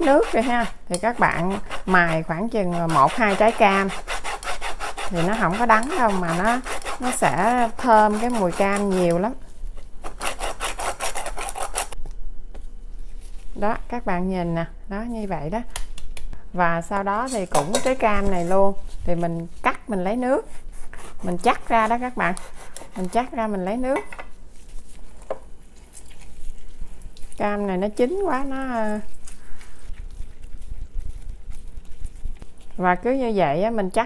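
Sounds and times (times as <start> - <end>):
peel scraping on grater: 0.0 - 9.3, 10.0 - 12.0, 20.7 - 23.4.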